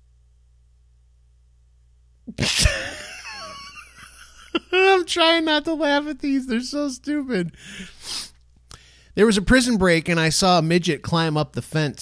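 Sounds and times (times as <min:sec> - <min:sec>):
man laughing wheezily: 0:02.3 - 0:05.0, 0:07.5 - 0:08.3.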